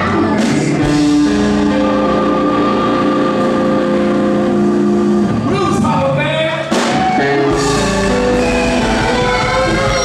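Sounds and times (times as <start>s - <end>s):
blues band playing: 0.0s - 10.0s
electric guitar bending note: 6.7s - 10.0s.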